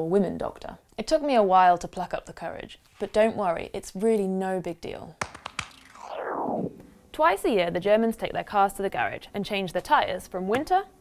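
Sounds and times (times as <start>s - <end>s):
whoosh falling in pitch: 5.2s - 7.1s.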